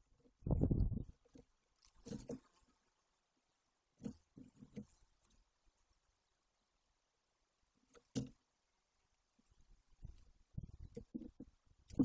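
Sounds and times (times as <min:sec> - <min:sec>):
beak picking at nest sticks: 0:00.1 - 0:02.8.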